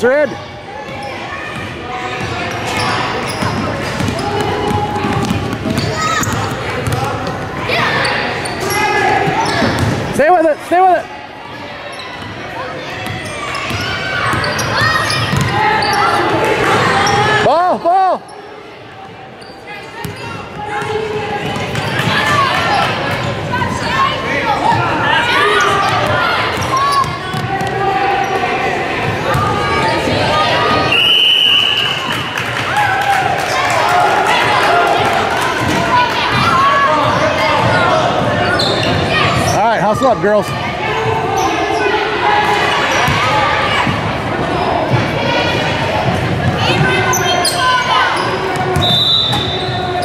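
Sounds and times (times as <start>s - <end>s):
shouting and chatter: 0.0s - 50.0s
referee's whistle: 30.9s - 32.1s, 48.7s - 50.0s.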